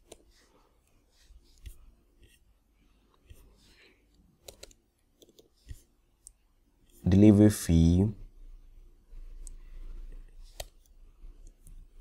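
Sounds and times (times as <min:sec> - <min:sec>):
mouse and keyboard clicks: 0:04.4 - 0:06.4, 0:10.4 - 0:11.8.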